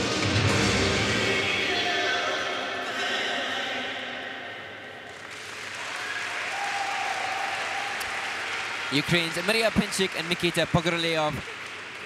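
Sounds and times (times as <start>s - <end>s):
audience applause: 5.1s - 12.0s.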